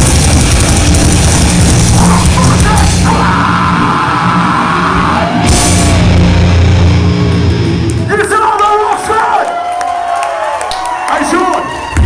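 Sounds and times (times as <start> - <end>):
heavy metal band playing live: 0.0 - 9.3.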